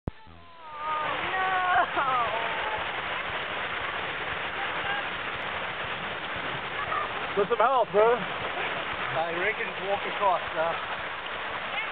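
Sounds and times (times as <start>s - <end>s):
fast-flowing stream rushing: 0.8s - 11.9s.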